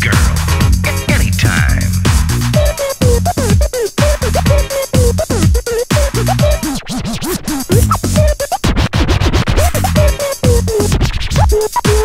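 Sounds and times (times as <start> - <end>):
acid house track from vinyl: 0.0 - 12.0
turntable scratching: 0.0 - 12.0.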